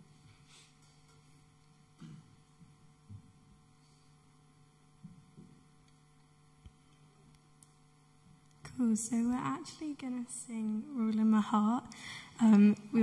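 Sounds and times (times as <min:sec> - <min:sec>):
electrical mains hum: 0:00.0 - 0:13.0
faint thumps and knocks: 0:05.0 - 0:05.6
woman speaking: 0:08.7 - 0:13.0.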